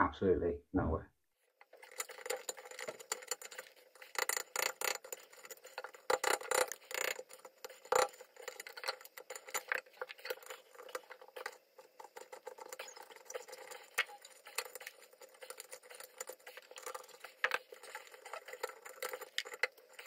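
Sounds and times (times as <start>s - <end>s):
screwdriver scraping metal: 1.7s - 20.0s.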